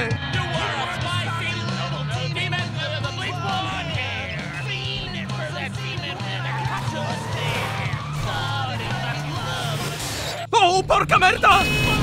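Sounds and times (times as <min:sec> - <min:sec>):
song with repeating bass line: 0:00.0 - 0:09.8
voices singing and calling: 0:00.0 - 0:10.5.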